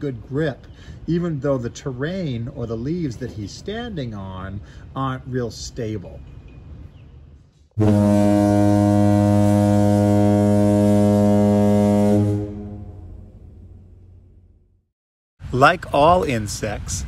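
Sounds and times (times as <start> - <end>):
low foghorn blast: 7.8 - 14.1.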